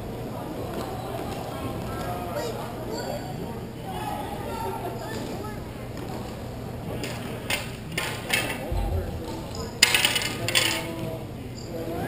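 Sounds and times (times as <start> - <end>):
hockey sticks clacking on floor: 7.0 - 11.0.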